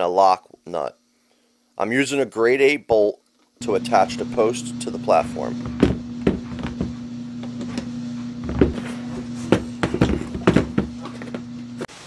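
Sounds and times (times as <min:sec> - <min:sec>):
steady low hum: 0:03.6 - 0:11.9.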